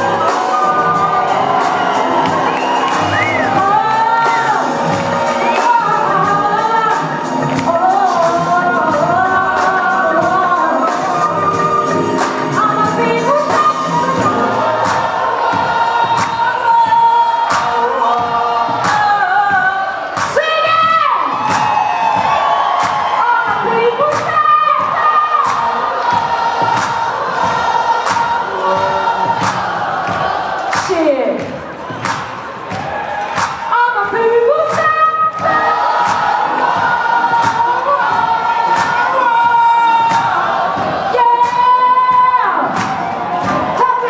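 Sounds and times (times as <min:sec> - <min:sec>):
voices singing long notes: 0:00.0 - 0:20.0
crowd cheering: 0:00.0 - 0:44.0
live band playing: 0:00.0 - 0:44.0.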